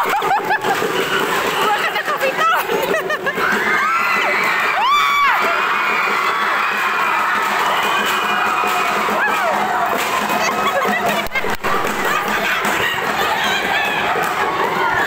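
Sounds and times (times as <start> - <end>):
crowd cheering and shouting: 0.0 - 15.0
loud whoop: 3.4 - 10.0.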